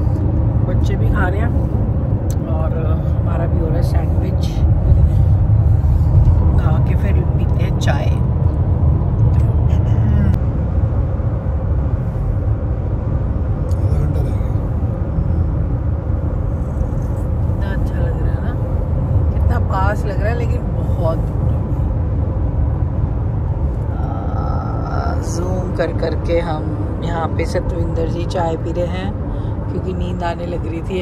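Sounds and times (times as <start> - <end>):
car road and engine rumble: 0.0 - 31.0.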